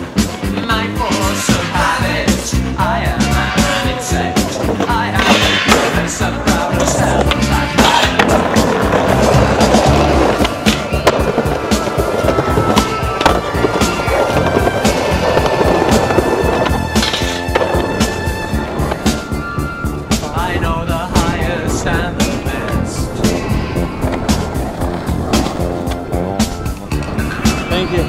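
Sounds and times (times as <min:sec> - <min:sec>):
loud music: 0:00.0 - 0:28.0
skateboards rolling on concrete: 0:00.0 - 0:28.0.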